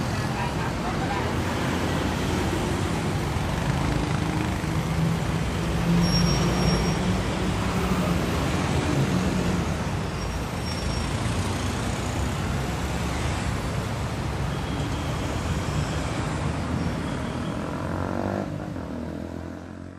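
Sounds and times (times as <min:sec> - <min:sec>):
road traffic rumble: 0:00.0 - 0:19.9.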